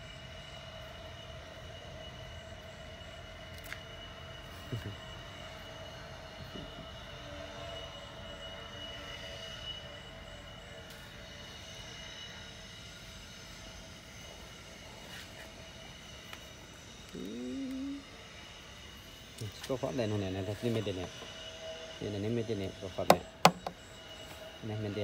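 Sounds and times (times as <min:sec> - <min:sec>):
faint high whine: 0:00.0 - 0:25.0
mechanical hum: 0:00.0 - 0:25.0
rising vocal sound: 0:17.2 - 0:18.0.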